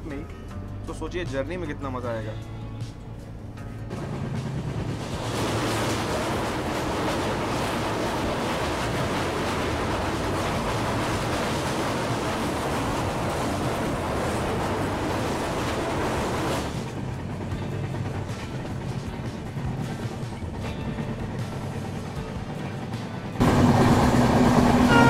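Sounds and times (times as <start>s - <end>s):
background music: 0.0s - 25.0s
train wheels on steel bridge: 3.9s - 25.0s.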